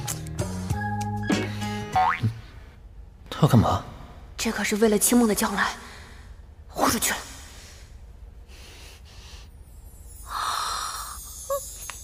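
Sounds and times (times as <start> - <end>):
playful comedic music: 0.0 - 2.4.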